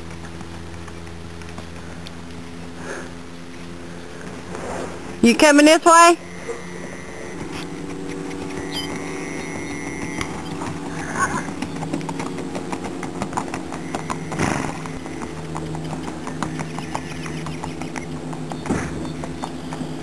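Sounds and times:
horse hooves clip-clopping on dirt: 0.0 - 2.8, 6.3 - 20.0
steady low hum: 0.0 - 20.0.

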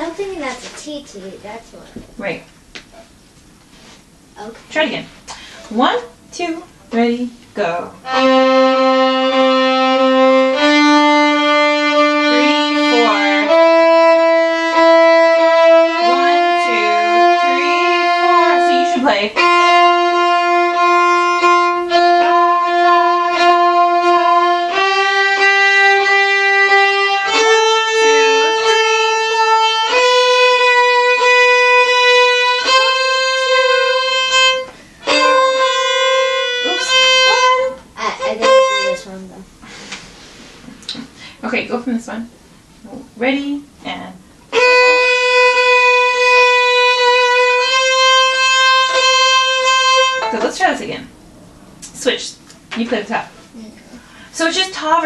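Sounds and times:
two violins playing: 7.9 - 39.2, 44.5 - 50.7.

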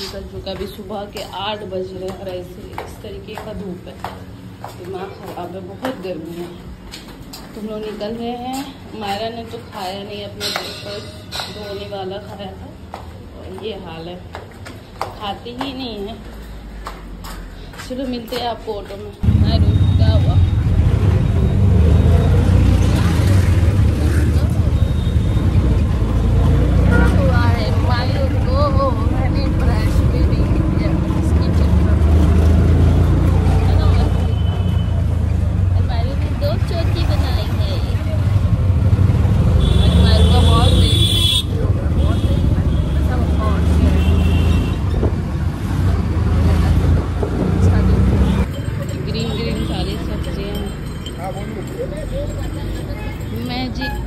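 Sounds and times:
road rumble: 0.0 - 54.0
auto-rickshaw engine: 19.2 - 54.0.

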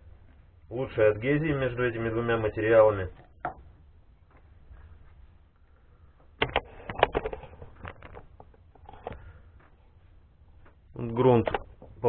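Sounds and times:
items clicking and knocking: 6.4 - 9.3.

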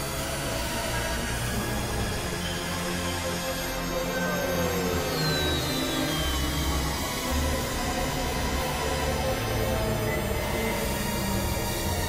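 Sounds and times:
high tone gliding downward: 4.0 - 11.4.

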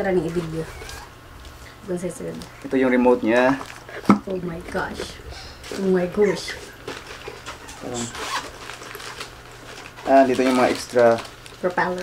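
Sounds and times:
fabric bag rustling: 4.6 - 12.0.

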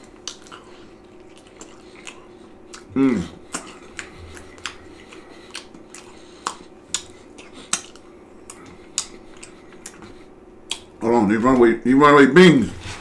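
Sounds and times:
person chewing food: 0.0 - 11.0
faint steady hum: 0.0 - 13.0.

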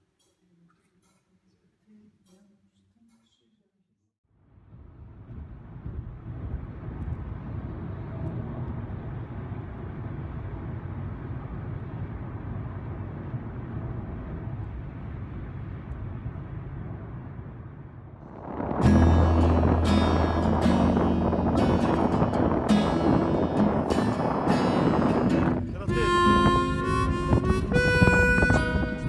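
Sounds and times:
car road rumble: 4.5 - 29.0.

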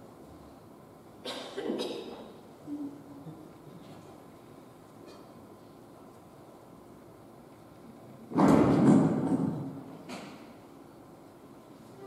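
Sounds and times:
loud thump: 8.3 - 9.6.

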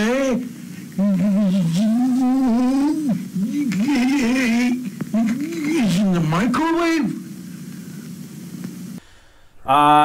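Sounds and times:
man wailing: 0.0 - 7.2.

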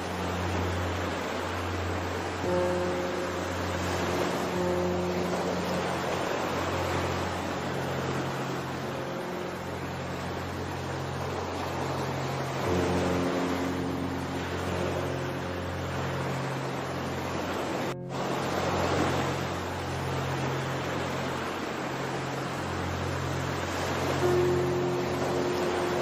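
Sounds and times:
ocean surf: 0.0 - 26.0
slow music of low chords: 0.0 - 26.0.

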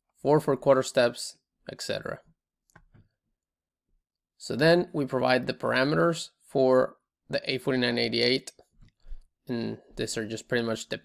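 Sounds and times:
person speaking: 9.5 - 11.0.

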